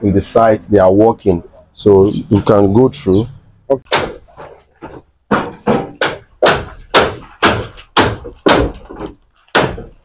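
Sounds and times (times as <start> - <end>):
hammer blows nailing: 5.3 - 10.0.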